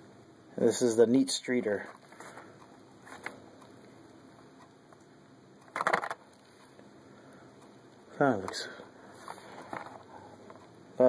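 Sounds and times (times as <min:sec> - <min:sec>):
plastic package and box rustling: 0:05.7 - 0:06.2.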